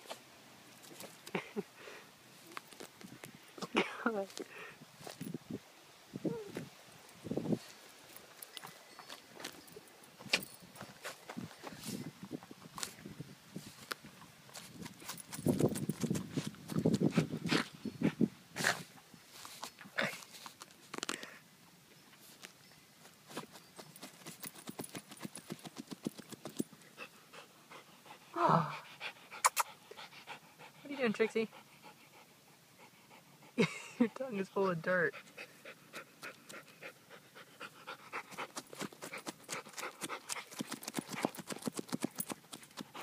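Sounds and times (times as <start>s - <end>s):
dog digging in dirt: 7.5s - 13.0s, 13.6s - 21.1s, 23.1s - 27.9s, 35.2s - 43.0s.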